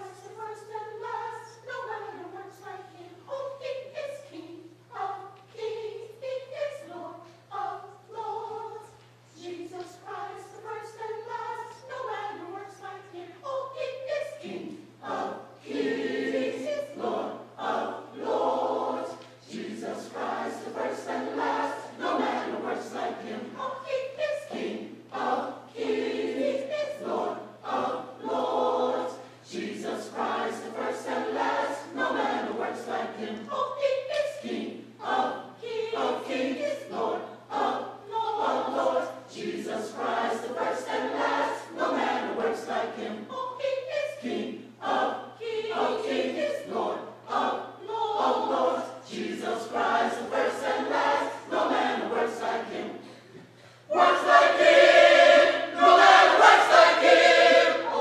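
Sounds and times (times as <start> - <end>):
choir singing gospel song: 0.0 - 58.0.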